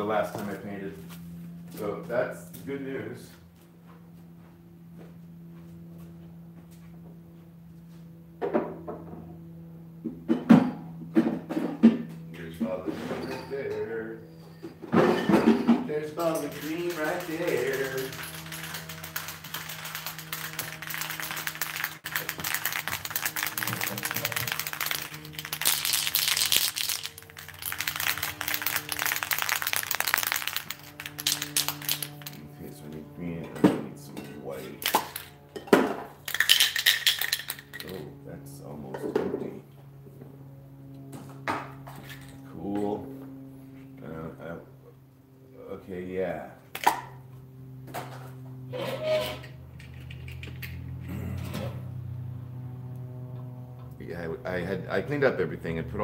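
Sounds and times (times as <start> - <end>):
spray paint cans hissing: 16.0 - 32.5, 36.2 - 37.8.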